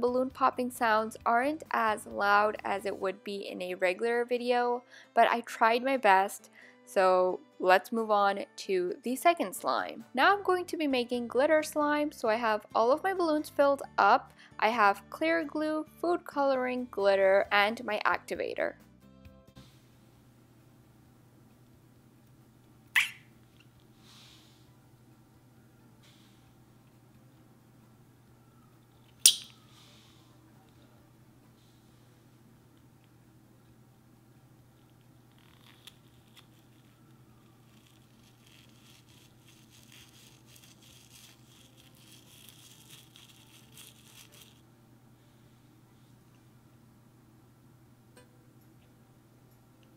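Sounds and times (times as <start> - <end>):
glitter pattering into a bowl: 38.0 - 44.6.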